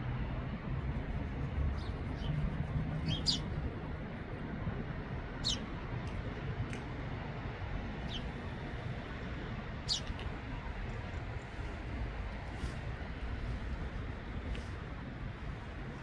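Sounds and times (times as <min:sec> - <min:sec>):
low background rumble: 0:00.0 - 0:16.0
small birds chirping: 0:01.7 - 0:03.5, 0:05.4 - 0:05.6, 0:08.0 - 0:08.4, 0:09.9 - 0:10.2.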